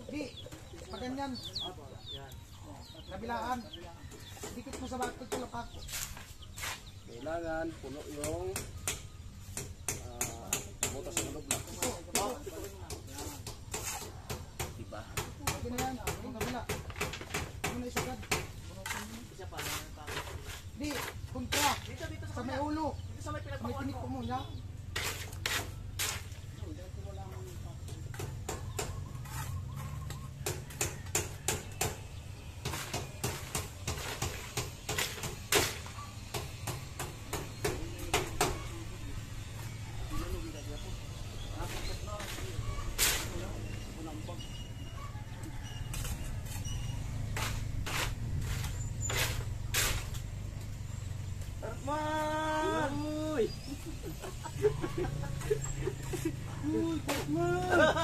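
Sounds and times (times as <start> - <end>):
voices talking: 0.0 - 58.0.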